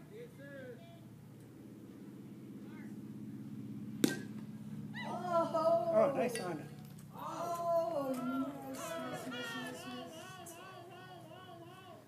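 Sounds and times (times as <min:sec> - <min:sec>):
steady low hum: 0:00.0 - 0:12.0
bat hitting ball: 0:04.0 - 0:04.4
faint distant voices: 0:04.9 - 0:12.0.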